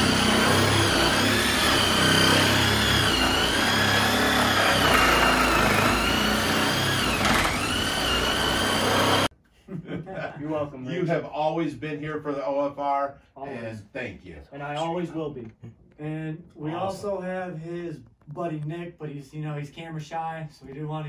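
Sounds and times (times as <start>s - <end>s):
power tool cutting with whine: 0.0s - 9.3s.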